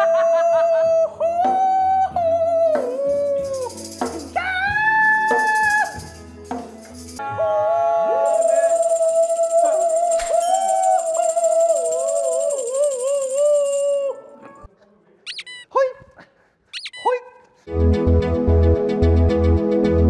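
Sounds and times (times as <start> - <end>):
man singing held note: 8.3 - 14.2
short high cries: 8.3 - 14.2, 15.3 - 15.8, 16.7 - 17.2.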